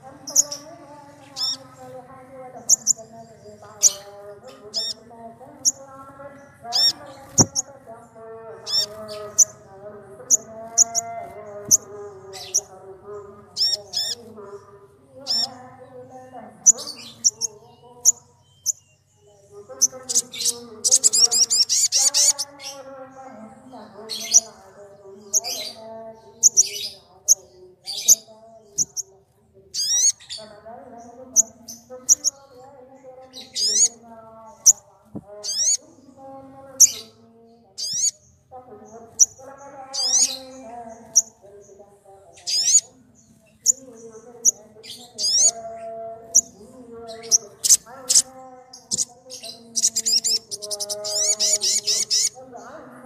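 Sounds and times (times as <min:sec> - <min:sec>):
birds chirping and trilling: 0:00.0 - 0:53.0.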